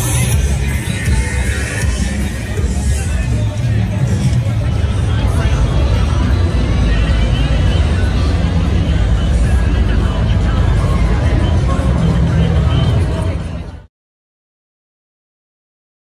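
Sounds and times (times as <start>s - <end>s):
music from bars: 0.0s - 13.7s
crowd chatter: 0.0s - 13.9s
heavy low rumble: 0.0s - 13.9s.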